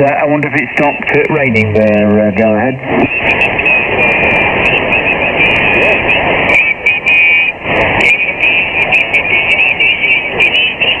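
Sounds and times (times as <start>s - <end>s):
garbled overlapping radio voices: 0.0s - 11.0s
radio band noise: 0.0s - 11.0s
whistling radio tones: 0.1s - 11.0s.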